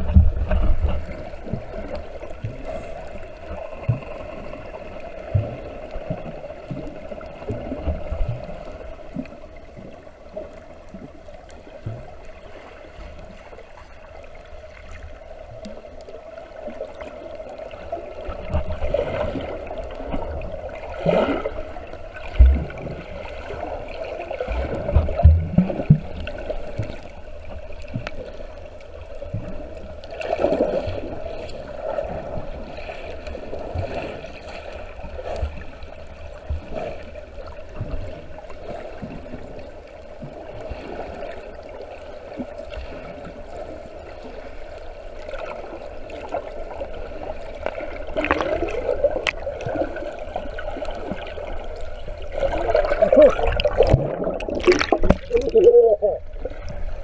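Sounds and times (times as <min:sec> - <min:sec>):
underwater water gurgling: 0:00.0 - 0:57.0.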